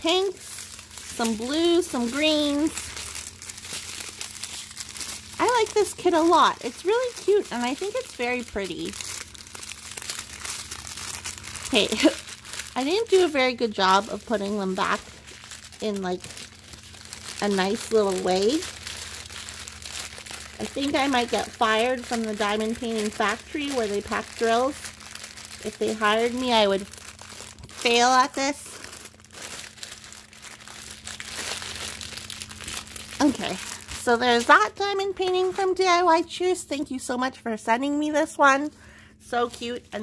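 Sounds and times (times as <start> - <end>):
plastic bags crinkling: 0.0 - 36.2, 38.4 - 40.0.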